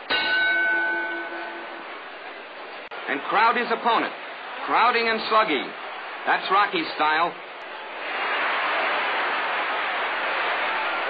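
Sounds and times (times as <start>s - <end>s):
boxing ring bell: 0.0s - 2.0s.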